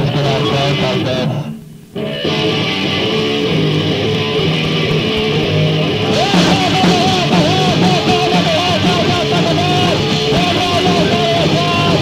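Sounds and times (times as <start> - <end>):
rock band playing: 0.0 - 12.0
strummed electric guitar: 0.0 - 12.0.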